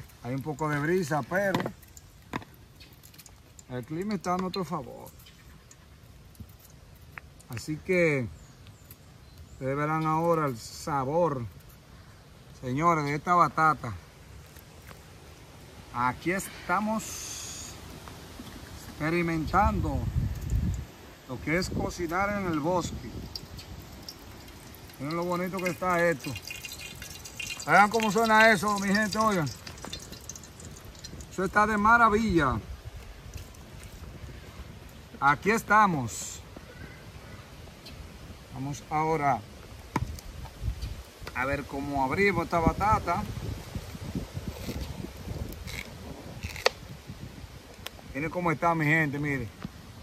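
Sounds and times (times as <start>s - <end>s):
wood fire crackling: 0.0s - 36.4s
low rumble of breeze: 0.0s - 50.0s
knife crunching through vegetable: 45.6s - 46.8s.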